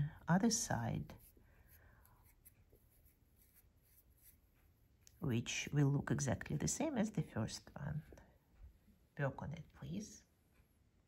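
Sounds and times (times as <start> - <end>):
thread rustling with crochet hook: 0.5 - 8.3.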